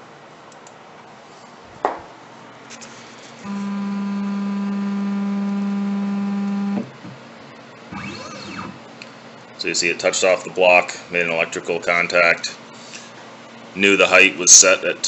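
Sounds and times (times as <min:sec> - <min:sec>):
stepper motor whining: 0:03.4 - 0:06.9, 0:07.9 - 0:08.9.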